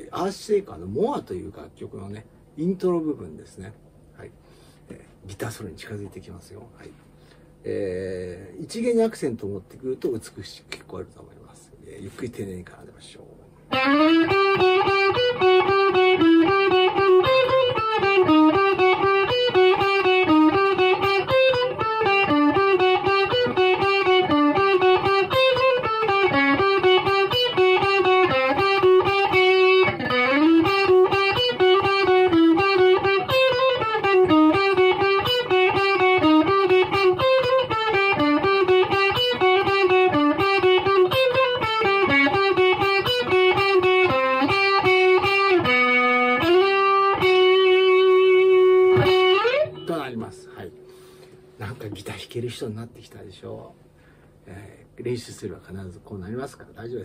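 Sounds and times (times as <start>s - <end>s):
electric guitar picked notes: 13.7s - 52.0s.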